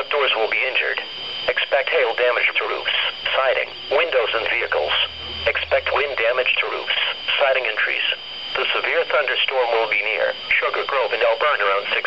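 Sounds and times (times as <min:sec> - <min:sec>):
automated voice through small speaker: 0:00.0 - 0:12.0.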